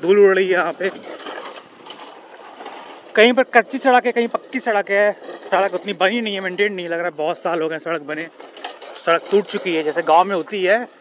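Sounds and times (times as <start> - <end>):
tyres on loose gravel: 0.0 - 11.0
wind: 0.0 - 11.0.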